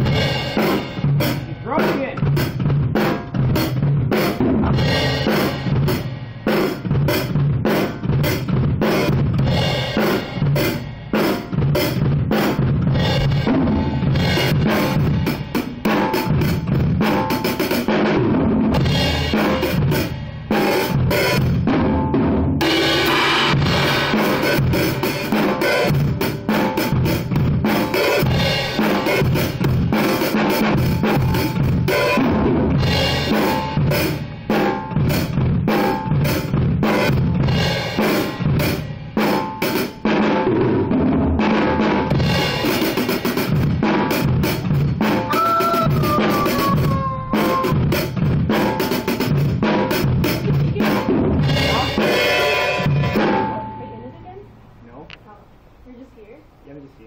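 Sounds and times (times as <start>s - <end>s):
acoustic drum kit playing: 0.0s - 54.5s.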